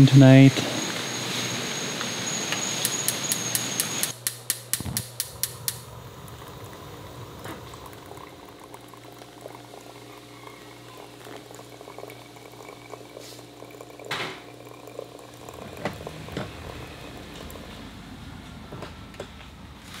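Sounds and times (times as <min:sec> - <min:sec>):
evening hiss: 0:00.0 - 0:04.2
sharp evenly spaced clicks: 0:02.8 - 0:05.8
water pouring into dripper: 0:05.2 - 0:17.8.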